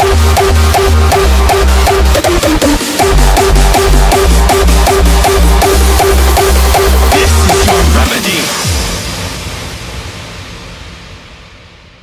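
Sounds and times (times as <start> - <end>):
reverb tail of electronic music: 0.0 - 12.0.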